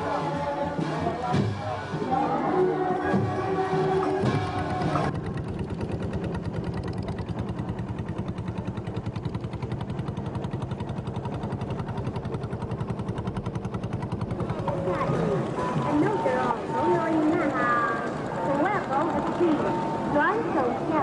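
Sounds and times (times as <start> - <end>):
voices or music: 0.0 - 5.1, 14.2 - 21.0
boat engine chugging: 0.0 - 21.0.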